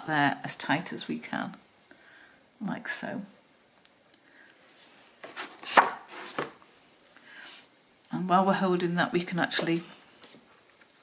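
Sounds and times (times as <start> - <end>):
card and twine rustling: 4.6 - 7.1, 9.4 - 11.0.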